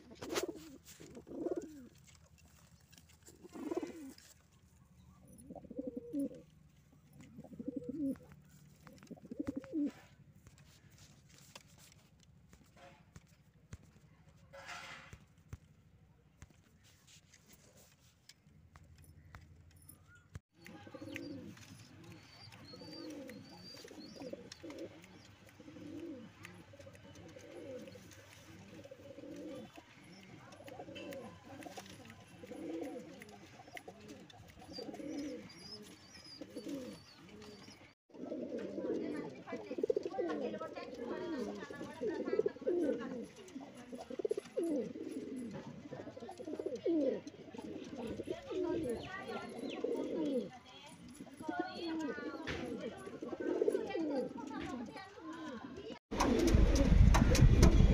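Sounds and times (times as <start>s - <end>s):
pigeons cooing: 0.0s - 4.5s, 5.2s - 10.2s, 20.6s - 57.0s.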